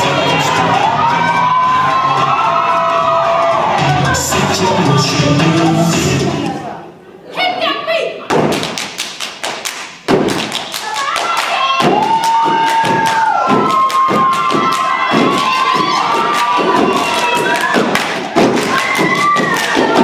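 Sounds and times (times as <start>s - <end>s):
stomping on wooden stage: 8.3s - 9.0s, 10.0s - 10.7s, 11.8s - 20.0s
people clapping in unison: 8.3s - 20.0s.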